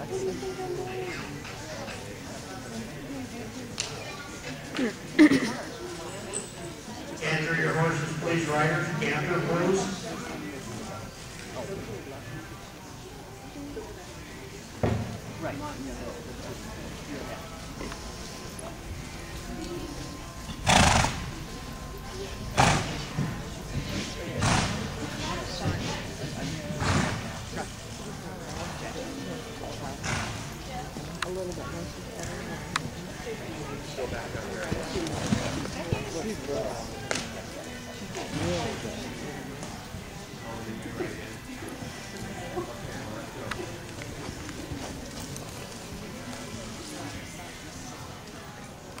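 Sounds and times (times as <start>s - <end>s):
people talking indistinctly: 0.0s - 49.0s.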